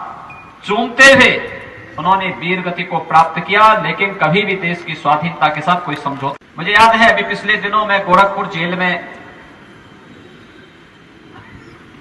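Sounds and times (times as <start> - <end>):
loudspeaker echo: 0.0 - 9.4
open-air background noise: 0.0 - 12.0.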